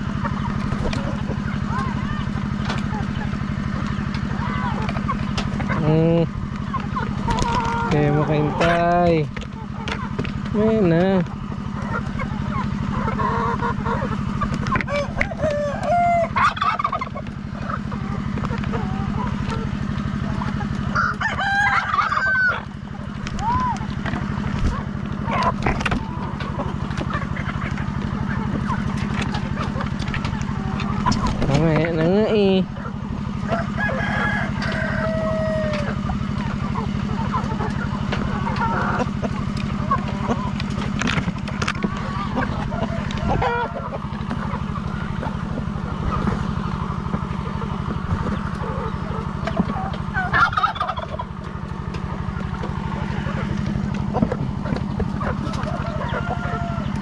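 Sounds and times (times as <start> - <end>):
chickens clucking: 0.0 - 57.0
low motor hum: 0.0 - 57.0
roosters crowing: 0.0 - 57.0.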